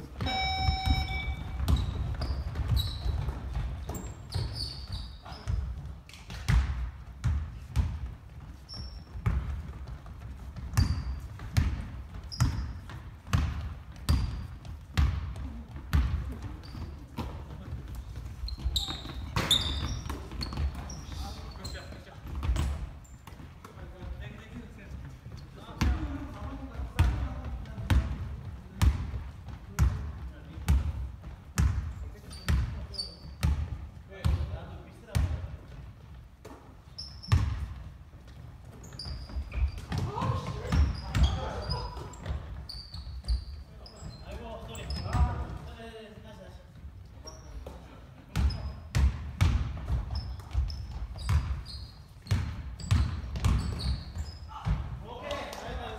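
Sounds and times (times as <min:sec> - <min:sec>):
sneaker squeaks: 0:00.0 - 0:29.1, 0:31.6 - 0:34.5, 0:35.1 - 0:45.7, 0:47.0 - 0:55.0
basketball bouncing on wooden floor: 0:00.1 - 0:21.2, 0:25.3 - 0:42.6, 0:48.3 - 0:55.0.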